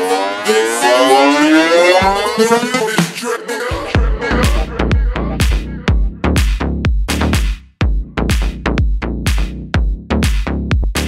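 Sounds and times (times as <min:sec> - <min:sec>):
rising synth sweep: 0:00.0 - 0:04.8
kick drum and bass: 0:02.0 - 0:03.2, 0:03.8 - 0:11.0.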